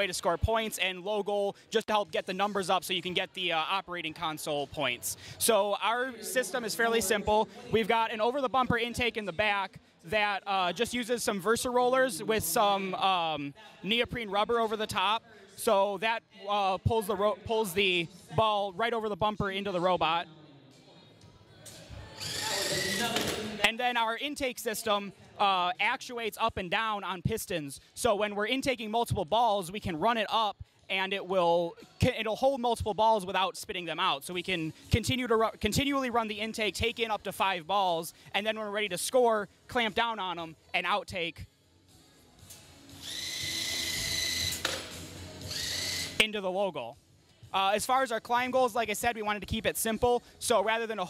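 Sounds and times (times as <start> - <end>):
electric motor whining: 22.2 - 23.4, 43.0 - 44.7, 45.4 - 46.2
robot intake rollers whirring: 22.2 - 23.4, 45.5 - 46.2.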